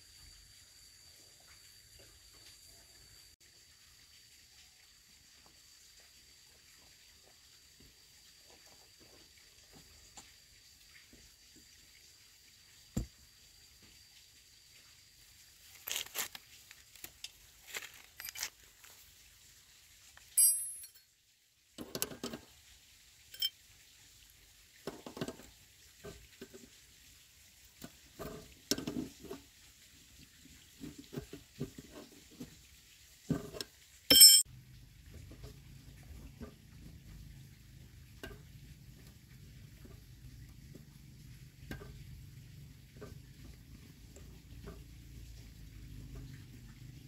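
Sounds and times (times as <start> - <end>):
ringing metal clinks: 20.4 - 21.1, 23.3 - 23.5, 34.1 - 34.4
low steady hum: 34.1 - 47.0.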